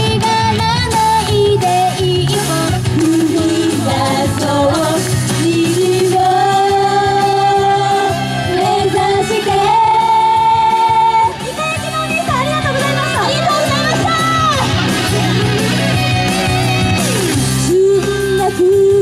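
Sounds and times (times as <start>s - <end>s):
girls singing pop: 0.0s - 14.5s, 16.9s - 19.0s
backing track through speakers: 0.0s - 19.0s.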